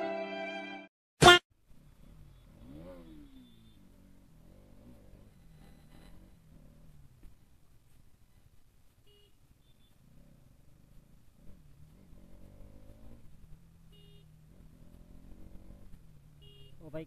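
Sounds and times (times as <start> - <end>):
motorcycle engine running: 1.6 - 8.1, 9.1 - 17.0.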